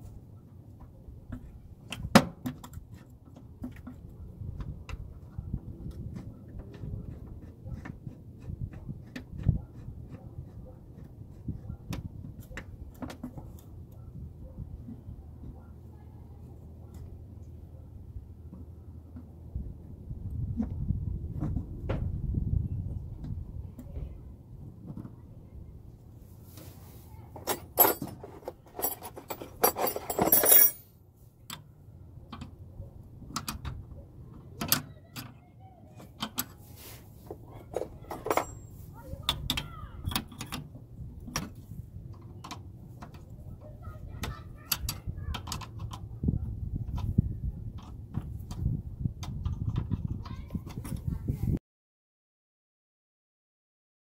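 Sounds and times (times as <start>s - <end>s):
metal tools clinking: 27.4s - 30.9s, 37.7s - 38.9s.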